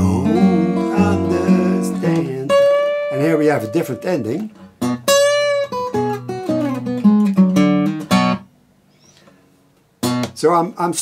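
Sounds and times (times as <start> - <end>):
fingerpicked acoustic guitar: 0.0 - 10.4.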